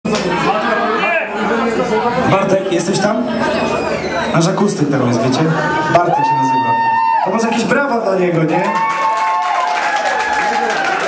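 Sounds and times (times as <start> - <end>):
crowd chatter: 0.1 - 8.5.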